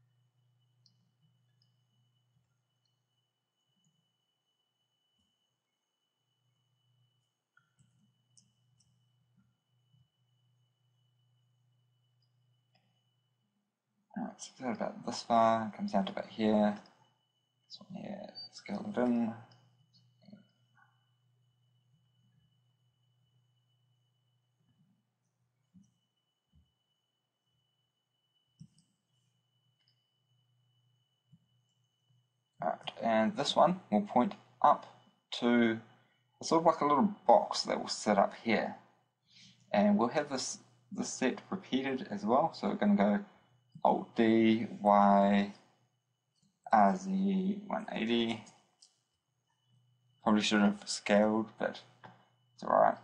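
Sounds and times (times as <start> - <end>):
faint low hum: 0.0 - 53.0
faint clicks: 7.2 - 9.2, 28.5 - 30.1, 48.3 - 49.9.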